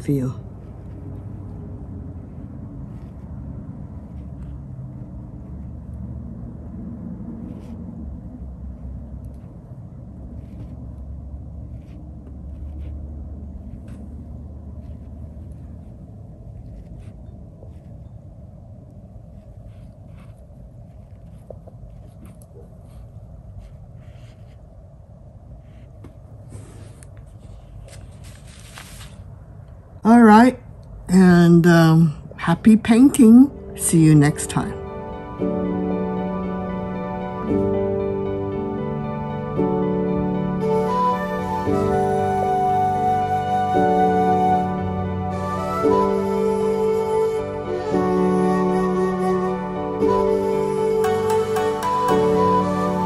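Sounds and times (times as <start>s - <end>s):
low background rumble: 0.0s - 51.1s.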